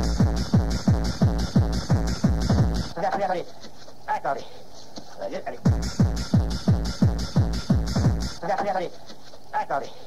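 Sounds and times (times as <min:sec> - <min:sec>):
kick drum: 0:00.0 - 0:03.0, 0:05.6 - 0:08.4.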